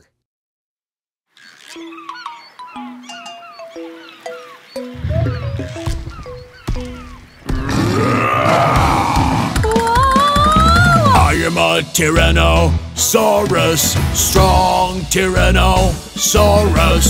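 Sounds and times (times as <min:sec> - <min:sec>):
bright cartoon song music: 0:01.9 - 0:07.0, 0:09.7 - 0:17.0
dinosaur roar: 0:07.4 - 0:09.7.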